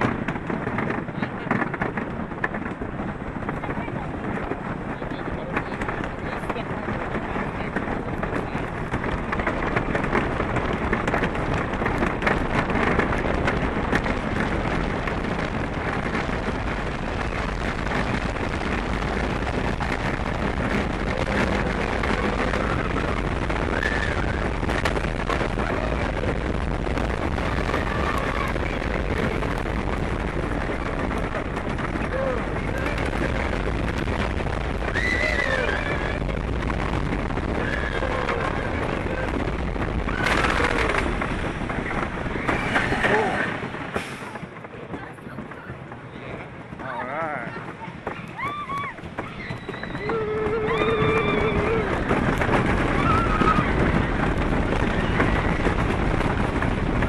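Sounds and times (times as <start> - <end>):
roller coaster wheels clattering: 0.0 - 57.0
wind rushing over microphone: 0.0 - 57.0
riders yelling: 34.8 - 36.4, 48.3 - 54.2.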